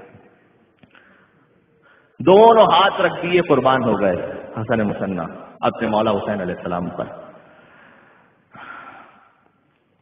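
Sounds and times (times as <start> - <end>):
man speaking: 2.2 - 7.3
sharp intake of breath: 7.4 - 9.4.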